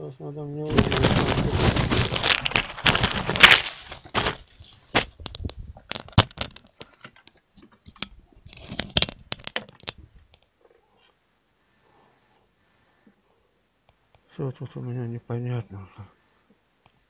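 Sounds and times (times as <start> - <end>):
crackling and sharp clicks: 0.7 - 10.5.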